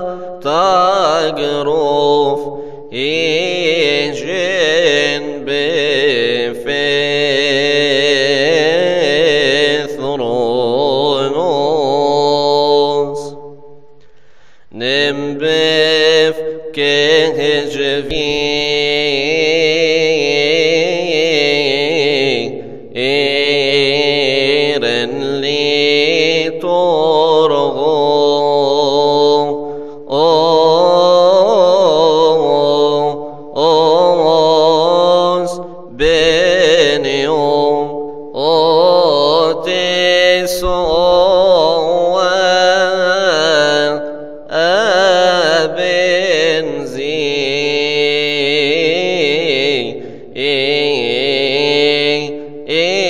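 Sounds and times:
man chanting a hymn: 0.0 - 13.6, 14.7 - 53.0
short breaths: 2.6 - 2.9, 13.8 - 14.8, 29.6 - 30.1, 50.0 - 50.3.

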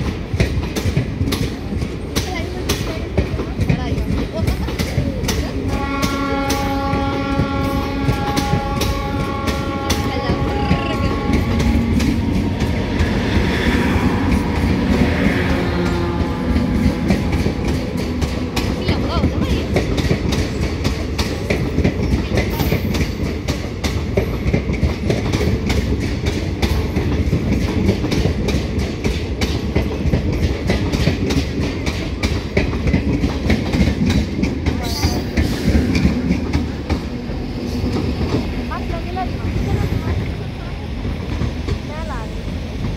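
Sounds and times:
low train rumble: 0.0 - 42.9
train wheels clicking over rail joints: 0.0 - 42.9
chord-like train horn: 5.7 - 17.6.

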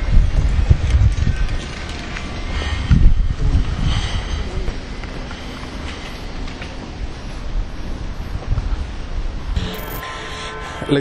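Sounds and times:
wind buffeting microphone: 0.0 - 9.6.

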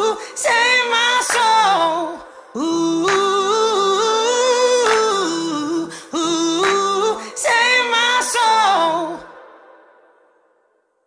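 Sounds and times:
woman singing pop song: 0.0 - 10.1.

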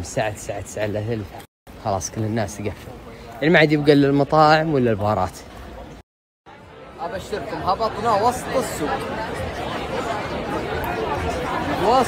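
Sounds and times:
chatter of many diners: 0.0 - 12.0.

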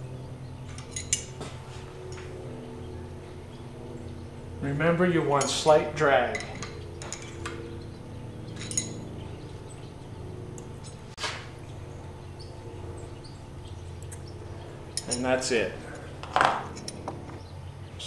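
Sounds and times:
steady low hum: 0.0 - 18.0
metallic clinks of hand tools: 0.8 - 1.4, 6.3 - 7.5, 8.6 - 9.1, 14.9 - 15.4.

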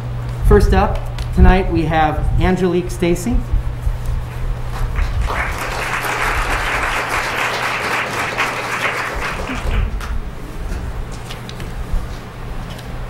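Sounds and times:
audience applauding: 4.8 - 10.2.

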